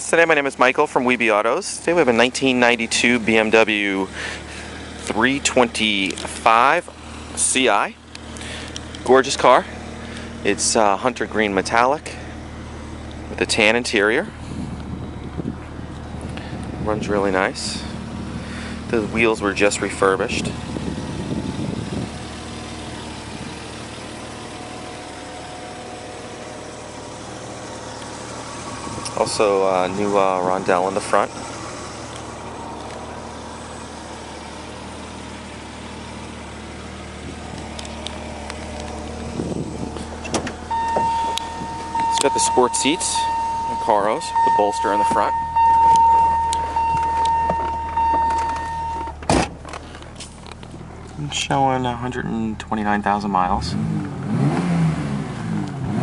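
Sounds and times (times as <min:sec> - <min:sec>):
car engine idling: 0:00.0 - 0:56.0
high whine: 0:21.4 - 0:36.4, 0:37.2 - 0:52.3
sharp clunk: 0:46.9 - 0:49.6.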